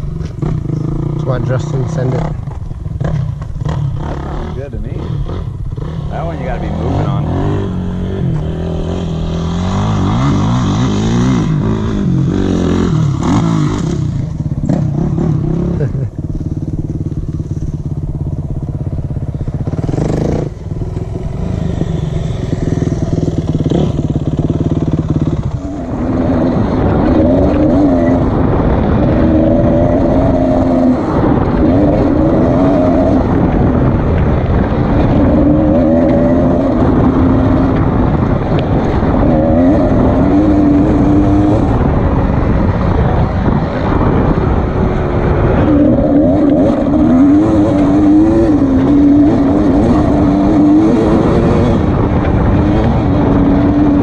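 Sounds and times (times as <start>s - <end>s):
dirt bike engine revving: 0.0s - 54.0s
steady low rumble: 0.0s - 54.0s
wind rush: 0.0s - 54.0s.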